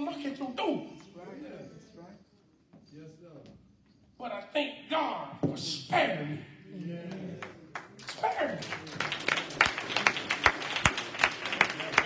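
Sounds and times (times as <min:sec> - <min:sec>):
rhythmic hand claps: 0:07.4 - 0:12.0.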